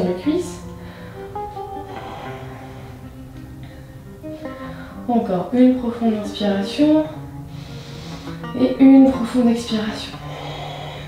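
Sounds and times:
slow plucked guitar notes: 0:00.0 - 0:11.0.

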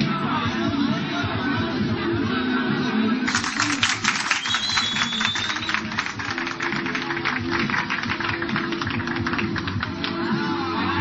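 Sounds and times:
dance music: 0:00.0 - 0:11.0.

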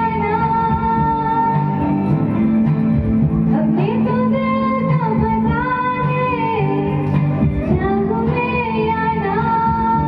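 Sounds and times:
woman singing into microphone: 0:00.0 - 0:02.4, 0:03.5 - 0:10.0
instrumental accompaniment: 0:00.0 - 0:10.0.

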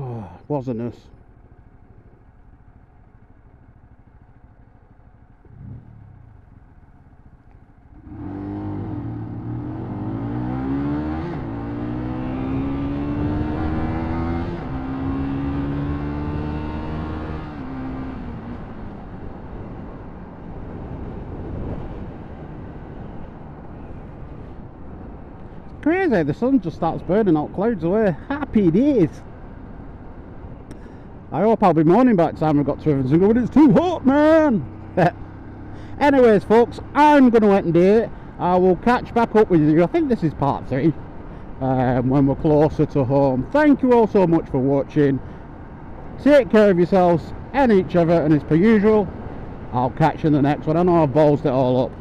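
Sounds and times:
motorcycle engine: 0:00.0 - 0:52.0
road and wind noise: 0:00.0 - 0:52.0.

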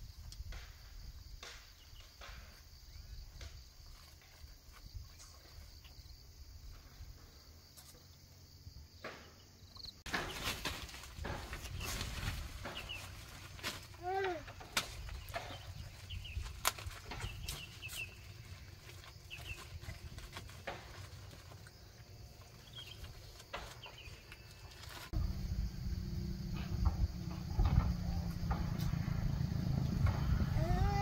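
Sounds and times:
plastic tarpaulin rustling: 0:10.1 - 0:25.2.

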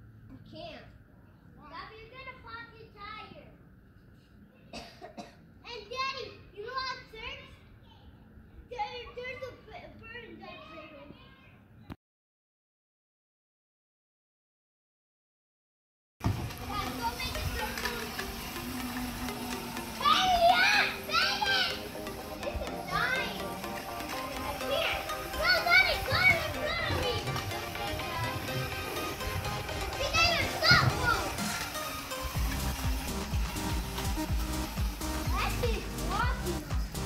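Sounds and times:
children shouting at play: 0:05.9 - 0:11.7, 0:16.5 - 0:32.1, 0:34.4 - 0:36.6
background music: 0:16.5 - 0:37.0.

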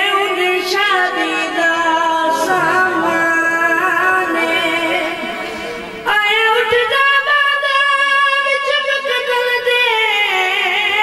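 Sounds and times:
boy chanting a lament: 0:00.0 - 0:11.0.

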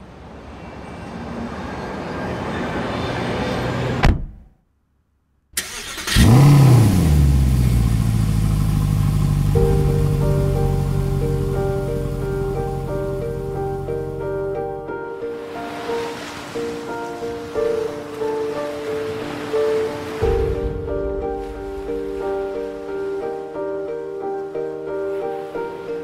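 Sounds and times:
car engine starting and idling: 0:05.6 - 0:14.6
pulsing music notes: 0:07.9 - 0:15.4.

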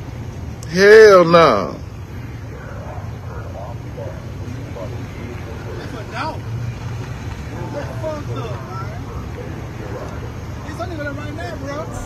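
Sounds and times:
low rumble of vehicles: 0:00.0 - 0:12.0
distant people talking: 0:00.6 - 0:12.0.

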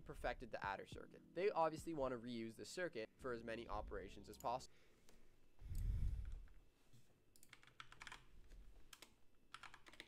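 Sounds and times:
computer keyboard typing: 0:07.4 - 0:08.3, 0:08.9 - 0:10.0.

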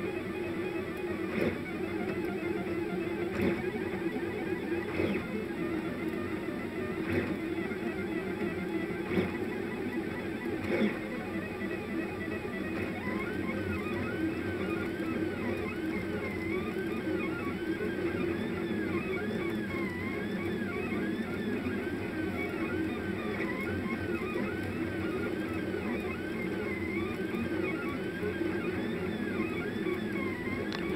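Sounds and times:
stepper motors whining: 0:00.0 - 0:30.9.

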